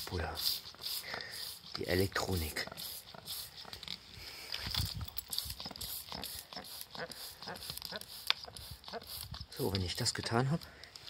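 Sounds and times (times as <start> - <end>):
spray bottle squirting: 0.0 - 11.0.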